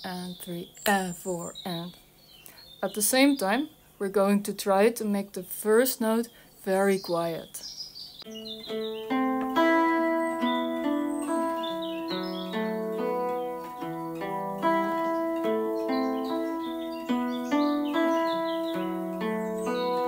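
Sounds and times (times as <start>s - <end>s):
electric guitar picked riff: 8.3s - 20.0s.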